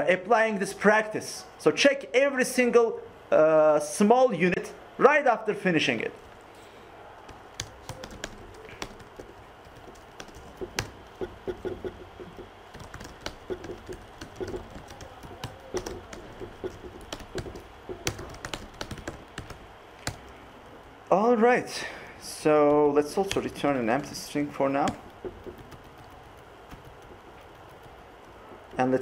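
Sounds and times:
laptop keyboard typing: 7.2s - 21.1s, 22.2s - 29.0s.

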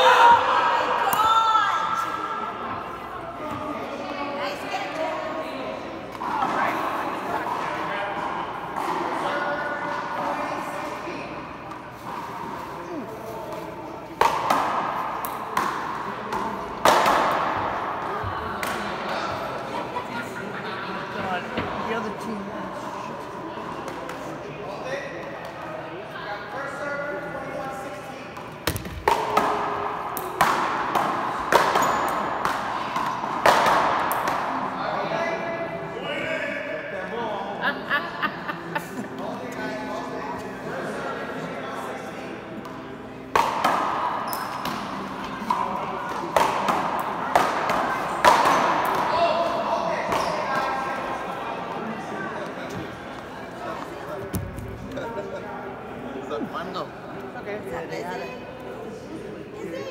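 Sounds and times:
ball cracking off paddles and wall: 14.2s - 17.6s, 28.6s - 34.6s.

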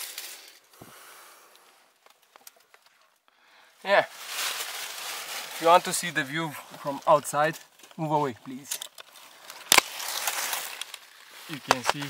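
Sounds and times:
footsteps through dry leaves: 3.8s - 12.0s
twig snapping: 8.7s - 12.0s.

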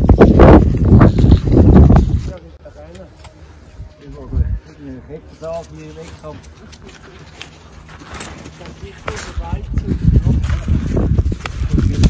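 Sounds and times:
snowshoe footsteps crunching snow: 5.4s - 12.0s.

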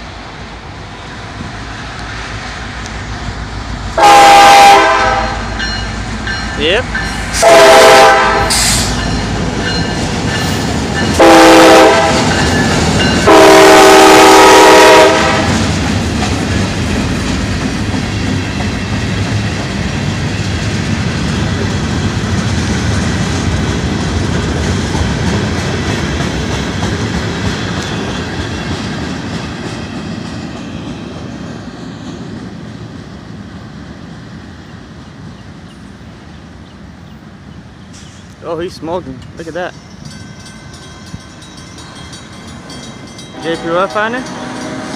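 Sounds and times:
locomotive air horn blasts: 4.0s - 5.6s, 7.4s - 8.9s, 11.2s - 12.3s, 13.3s - 15.6s, 43.4s - 44.9s.

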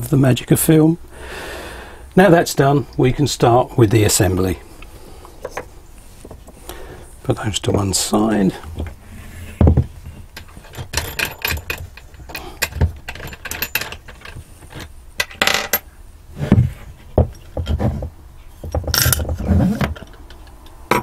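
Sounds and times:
metal parts clinking: 10.0s - 15.9s, 18.7s - 19.3s.

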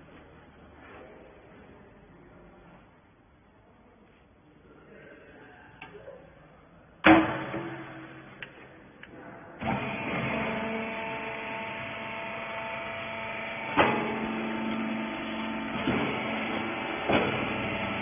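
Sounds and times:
baler motor humming: 9.6s - 18.0s.

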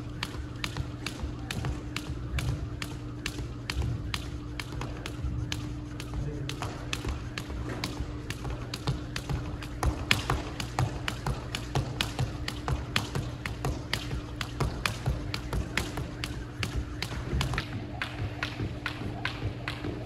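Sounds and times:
jump rope ticking on wooden floor: 0.0s - 20.0s
steady low hum: 0.0s - 20.0s.

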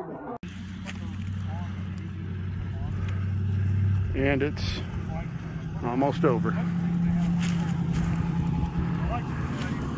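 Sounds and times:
vehicle engine running: 0.4s - 9.9s.

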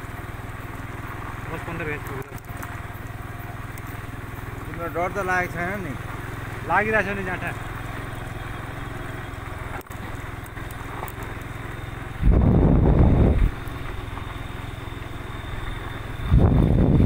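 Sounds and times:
engine humming: 0.0s - 17.0s.

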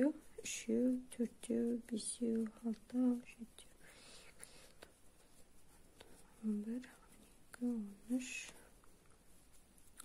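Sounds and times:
woman's voice: 0.0s - 3.8s, 6.4s - 8.6s
soft whisper: 0.0s - 10.0s.

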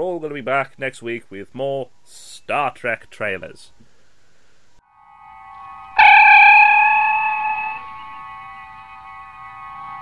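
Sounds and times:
sustained music chord: 4.8s - 10.0s
faint tone: 5.1s - 10.0s.

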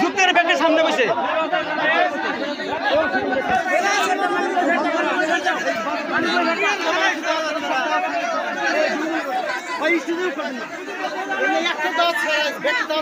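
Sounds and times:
crowd talking: 0.0s - 13.0s.

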